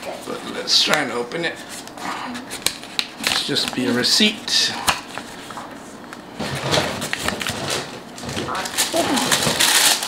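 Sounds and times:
crisp paper rustle: 6.4 - 10.0
paper rustling: 6.4 - 10.0.

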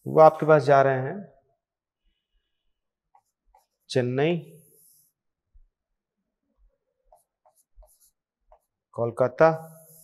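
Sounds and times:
stylus tapping and scraping screen: 1.9 - 10.0.

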